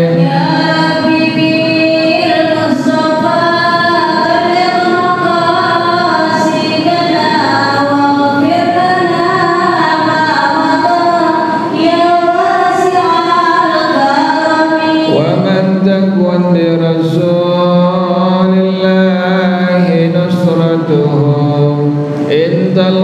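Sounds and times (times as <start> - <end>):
man chanting devotional song: 15.0 - 23.0.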